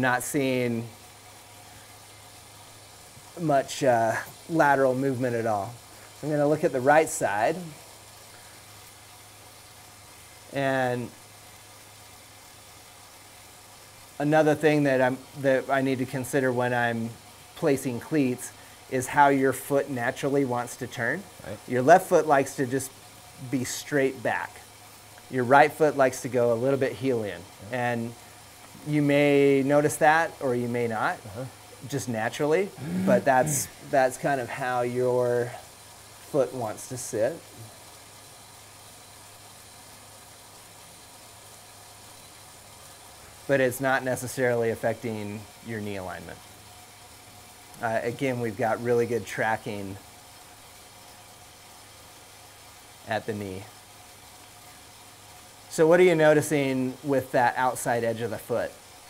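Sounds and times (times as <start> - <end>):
bicycle trainer humming: 0.0 - 59.0.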